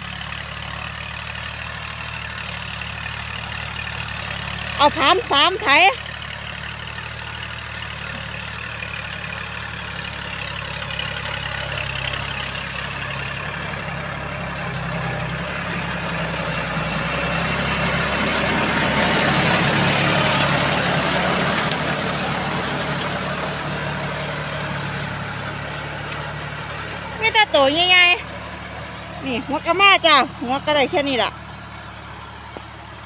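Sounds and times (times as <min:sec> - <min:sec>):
tractor diesel engine under load: 0:00.0 - 0:33.0.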